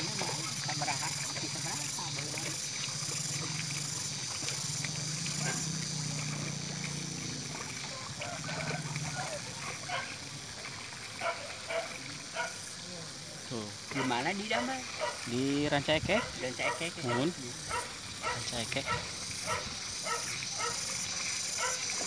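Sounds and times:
people talking outdoors: 0.0 - 21.9.

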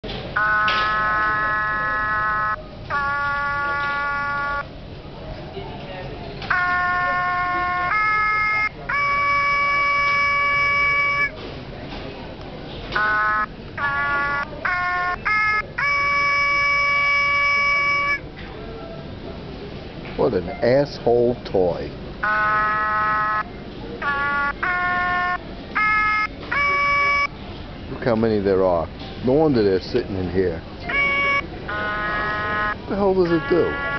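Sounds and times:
toy voice box buzzy notes: 0.4 - 4.7, 6.5 - 11.3, 13.0 - 18.2, 24.0 - 27.3, 30.9 - 33.9.

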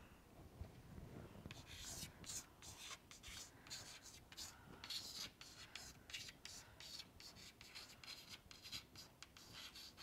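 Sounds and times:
faint scratching of writing: 1.5 - 10.0.

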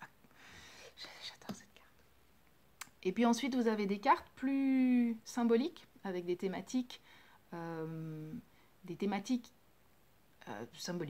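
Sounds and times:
woman whispering: 1.0 - 2.0.

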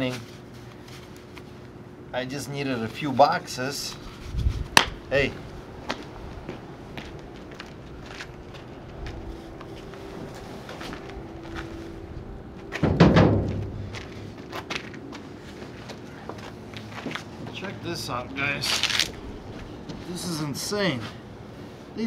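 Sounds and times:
small knocks and steps: 12.6 - 17.7.

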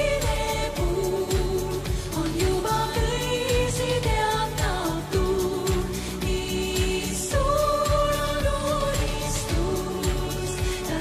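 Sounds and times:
woman singing pop ballad: 0.0 - 11.0.

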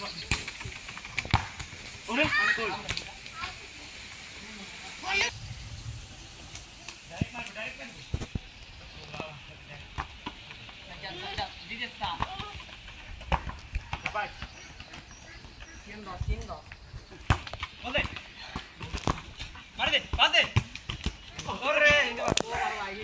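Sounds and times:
boys shouting: 2.1 - 2.9, 21.6 - 23.0.

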